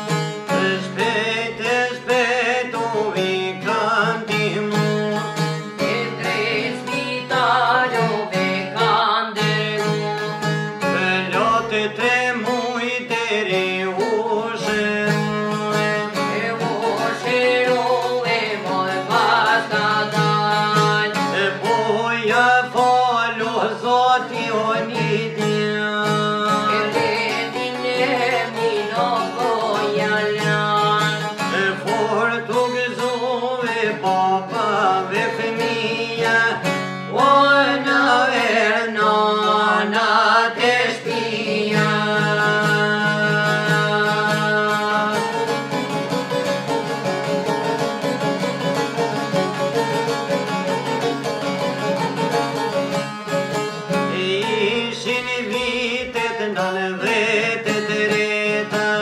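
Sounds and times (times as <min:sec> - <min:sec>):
plucked long-necked lutes: 0:00.0 - 0:59.0
men singing folk song: 0:00.1 - 0:52.8, 0:53.5 - 0:59.0.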